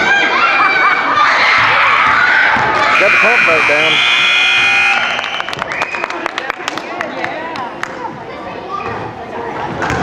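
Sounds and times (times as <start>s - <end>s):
crowd and children's voices: 0.0s - 10.0s
scoreboard buzzer: 2.9s - 5.4s.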